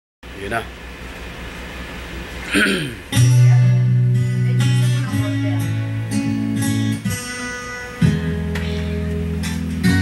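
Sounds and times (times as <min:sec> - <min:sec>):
steady low hum: 0:00.2 - 0:10.0.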